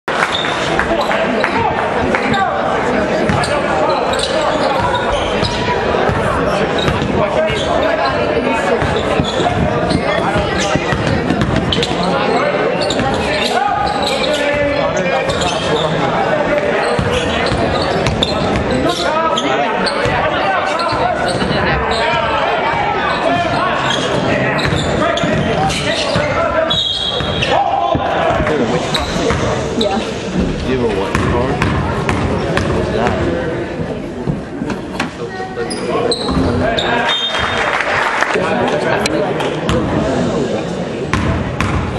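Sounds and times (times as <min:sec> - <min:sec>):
people talking and shouting: 0:00.0 - 0:41.9.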